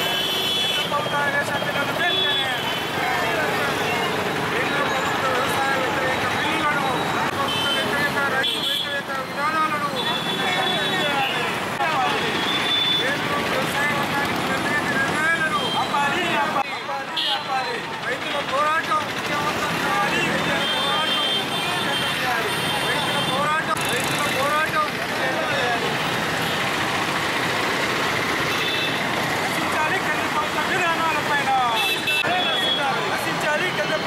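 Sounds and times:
street traffic: 0.0s - 34.0s
voices talking: 0.0s - 34.0s.

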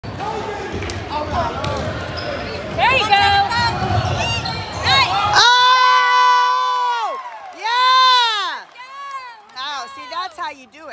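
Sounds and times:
players and spectators talking: 0.0s - 10.9s
spectator cheering loudly: 4.9s - 9.4s.

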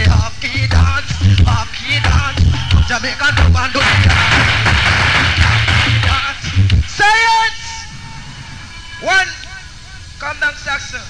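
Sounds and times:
reggae music on sound system: 0.0s - 8.1s
steady rushing noise: 1.0s - 11.0s.

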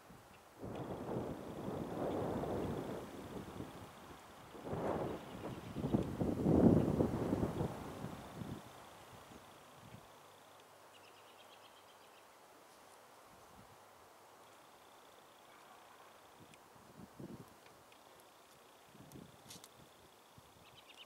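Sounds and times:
wind gusting on microphone: 0.1s - 10.1s, 16.4s - 17.6s.

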